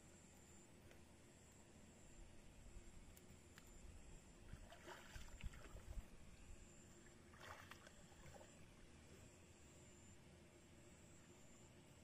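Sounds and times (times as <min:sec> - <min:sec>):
water splashing and sloshing: 0:04.5 - 0:06.2, 0:07.0 - 0:09.0.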